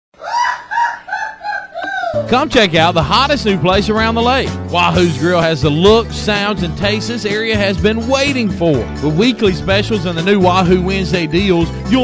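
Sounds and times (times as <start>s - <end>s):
rooster crowing: 0.2s - 2.2s.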